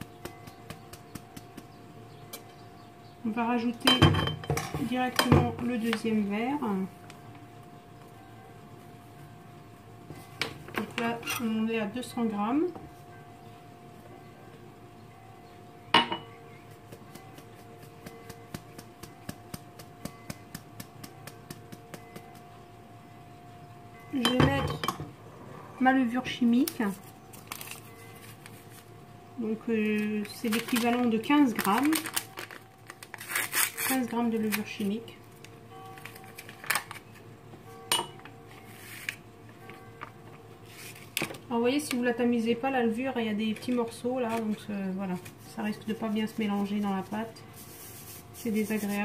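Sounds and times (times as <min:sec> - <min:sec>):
paper sachet rustling: 0:26.6 - 0:28.9, 0:29.9 - 0:35.0, 0:44.3 - 0:49.0
metal sieve clinking on ceramic bowl: 0:37.9 - 0:38.2.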